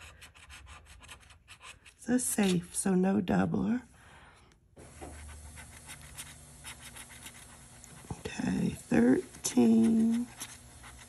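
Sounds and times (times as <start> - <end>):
scratching lottery ticket: 0.0 - 2.6, 4.9 - 11.0
low steady hum: 2.0 - 11.0.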